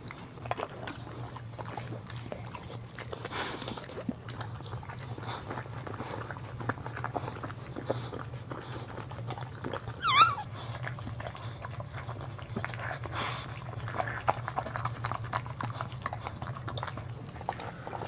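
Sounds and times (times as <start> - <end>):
dog licking with wet clicks: 0.0 - 18.0
puppy squealing: 10.0 - 10.5.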